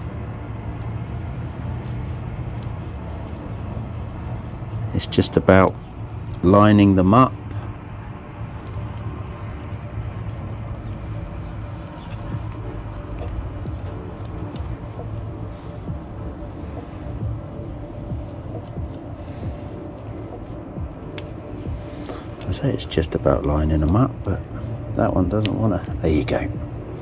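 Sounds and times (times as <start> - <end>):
low outdoor rumble: 0.0 - 27.0.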